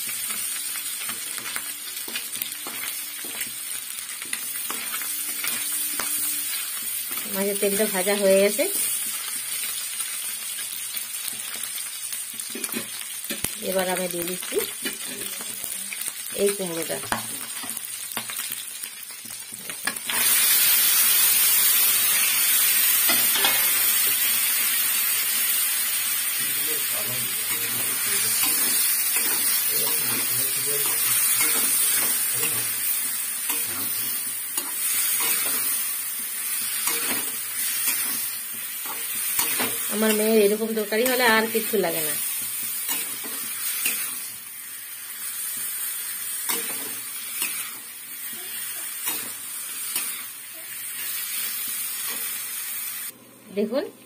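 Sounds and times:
oil sizzling in a metal pan: 0.0 - 53.9.

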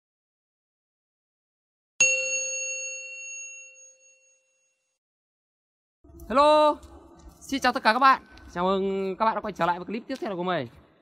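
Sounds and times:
metallic bell-like ding: 2.0 - 4.9.

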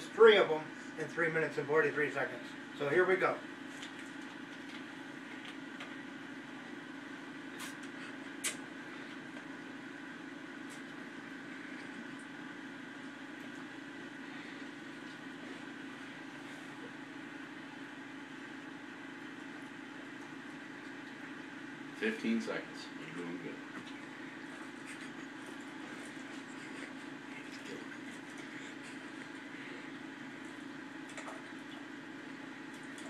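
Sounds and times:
low room hum with hiss: 0.0 - 33.0.

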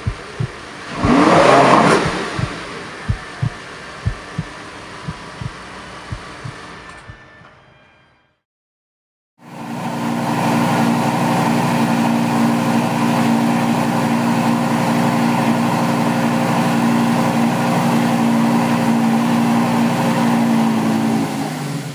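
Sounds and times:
car engine running: 0.0 - 6.6.

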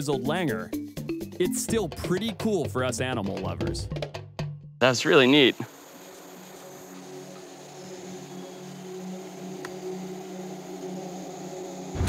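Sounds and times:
low sustained drone music: 5.7 - 12.0.

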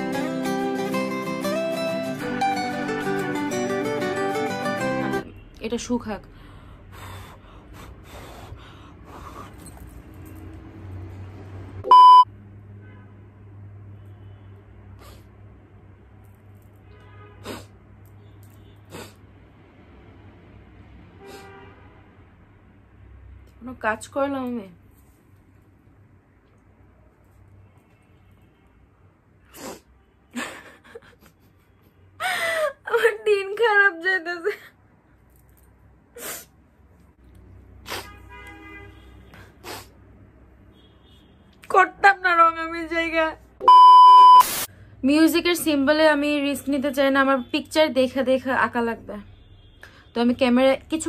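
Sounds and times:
short electronic beep: 11.8 - 12.3, 43.6 - 44.7
woman gasping: 32.2 - 32.9.

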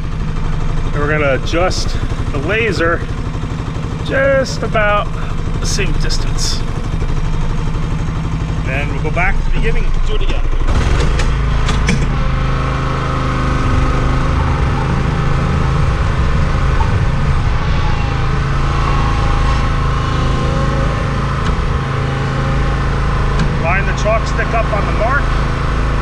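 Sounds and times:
small gasoline engine running: 0.0 - 26.0.

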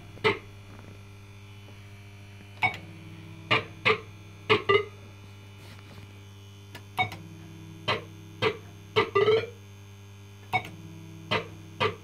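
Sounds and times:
fruit machine humming: 0.0 - 9.6.

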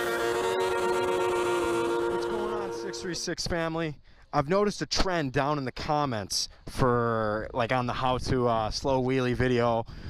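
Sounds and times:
held electronic chord: 0.0 - 3.3.

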